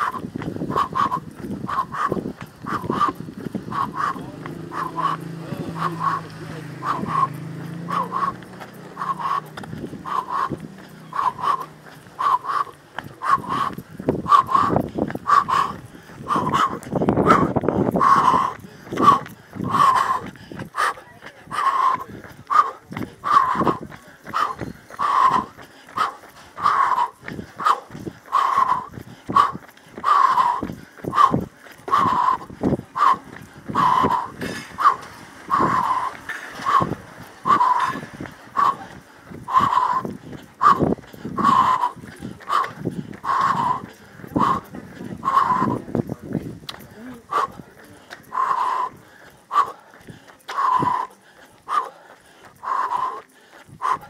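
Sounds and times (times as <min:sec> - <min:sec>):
runner breathing hard: 0:00.0 - 0:54.0
running footsteps: 0:00.0 - 0:54.0.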